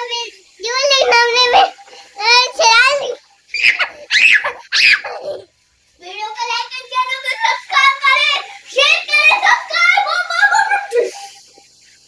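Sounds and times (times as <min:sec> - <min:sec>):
child talking: 0:00.0 - 0:03.2, 0:05.1 - 0:11.4
little girl laughing: 0:03.6 - 0:05.5.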